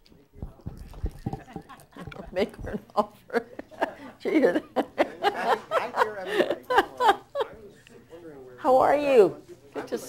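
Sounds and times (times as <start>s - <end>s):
soft low thumps and knocks: 0.4s - 2.8s.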